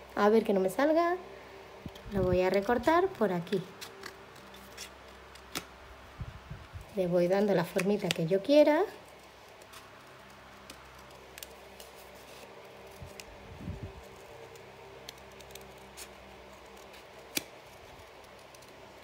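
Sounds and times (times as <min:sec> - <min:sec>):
scissors snipping paper: 0:14.0 - 0:19.0.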